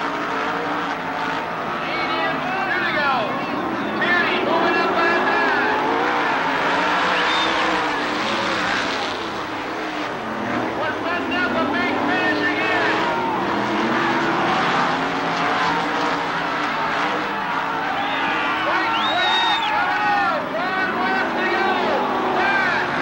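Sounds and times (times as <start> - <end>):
race car engines revving: 0.0 - 23.0.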